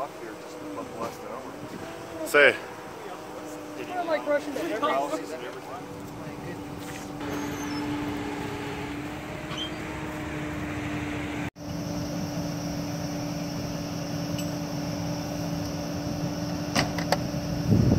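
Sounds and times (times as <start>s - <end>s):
vehicle engines idling: 0.0s - 17.9s.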